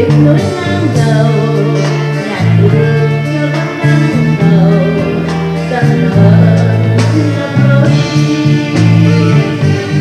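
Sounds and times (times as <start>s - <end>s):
guitar: 0.0s - 10.0s
held bass notes: 0.0s - 10.0s
live band playing: 0.0s - 10.0s.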